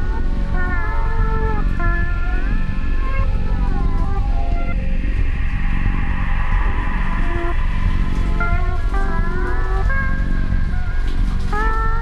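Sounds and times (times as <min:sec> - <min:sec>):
bass and drums: 0:00.0 - 0:12.0
distorted guitar notes sliding: 0:00.0 - 0:12.0.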